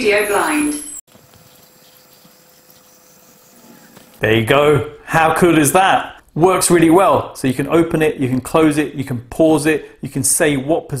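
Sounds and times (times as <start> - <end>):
blind motor whirring: 1.1 - 4.2.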